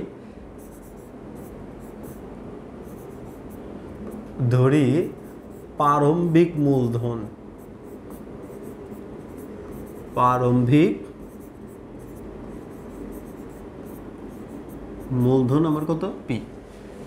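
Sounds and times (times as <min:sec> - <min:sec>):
pen scratching on board: 0:00.6 - 0:02.2, 0:02.8 - 0:04.3, 0:07.6 - 0:10.2, 0:11.2 - 0:15.8.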